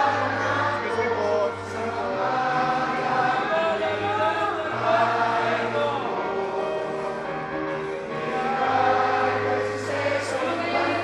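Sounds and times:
choir singing a slow hymn: 0.0s - 11.0s.

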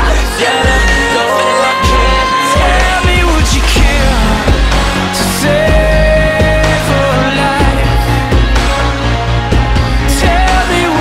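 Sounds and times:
heavy bass line: 0.0s - 11.0s
loud instrumental music: 0.0s - 11.0s.

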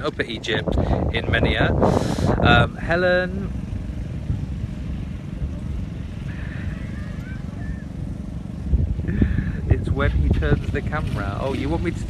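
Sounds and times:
wind buffeting microphone: 0.0s - 12.0s
faint voice: 6.3s - 7.9s.

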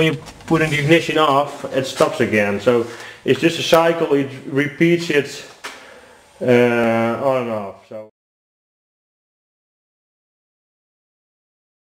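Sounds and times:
man's voice: 0.0s - 5.6s, 6.4s - 8.1s.

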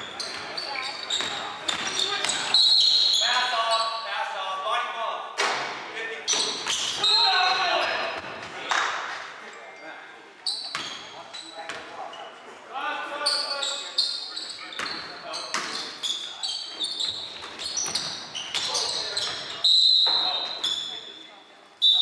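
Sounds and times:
sneaker squeaks: 0.0s - 4.1s, 6.3s - 8.3s, 10.4s - 12.6s, 13.2s - 22.0s
players calling out: 6.2s - 8.4s.

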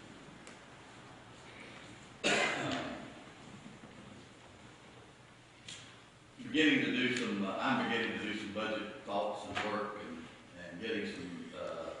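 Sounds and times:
person throat-clearing cough: 2.2s - 3.1s.

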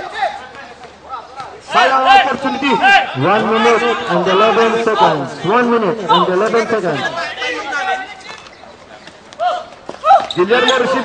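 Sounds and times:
men calling out: 1.1s - 8.7s, 9.4s - 11.0s.

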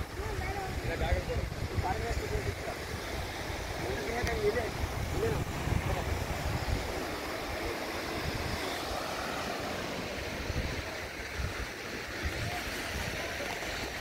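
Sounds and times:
surf washing on beach: 0.0s - 14.0s
wind on microphone: 0.0s - 14.0s.

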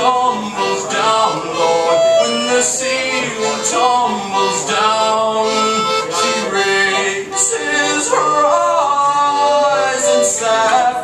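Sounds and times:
concertina playing chords: 0.0s - 10.9s.

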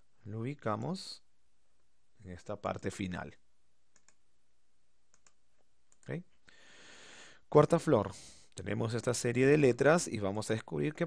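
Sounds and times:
faint computer mouse clicks: 4.0s - 4.2s, 5.1s - 6.1s.

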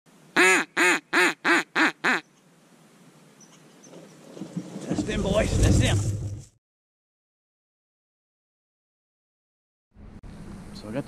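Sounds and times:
duck call quacks: 0.4s - 2.3s.

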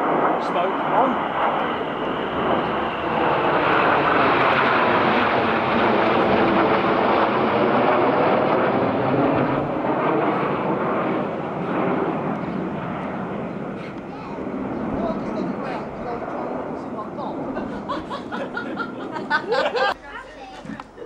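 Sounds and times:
jets flying past overhead: 0.0s - 19.9s.

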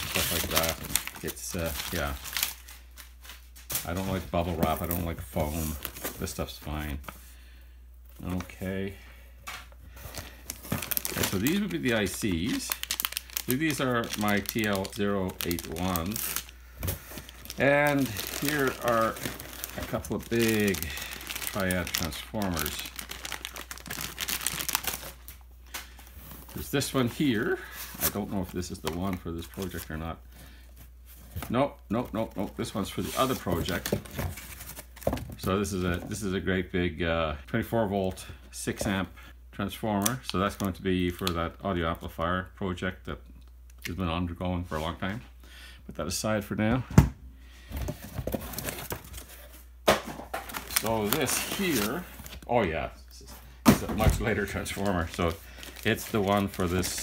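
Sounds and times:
plastic bag crinkling: 0.0s - 6.5s, 10.0s - 30.0s, 50.3s - 52.5s, 53.8s - 57.0s
paper packing rustling: 0.0s - 7.2s, 9.9s - 36.2s, 47.7s - 57.0s.

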